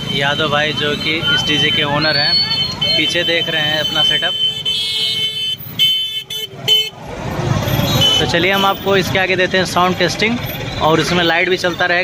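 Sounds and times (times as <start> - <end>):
street noise: 0.0 - 12.0
vehicle horn tooting: 2.2 - 7.0, 7.9 - 8.9.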